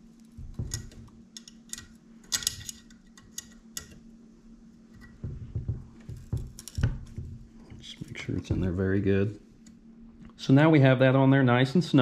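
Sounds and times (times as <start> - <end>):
dull handling knocks: 5.2 - 7.6.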